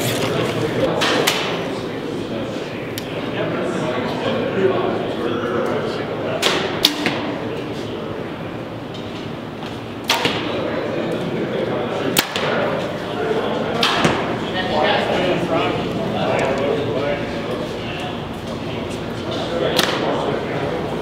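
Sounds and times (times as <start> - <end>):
background chatter: 0.0 - 21.0
arrows striking foam targets: 10.1 - 10.5, 12.2 - 12.6.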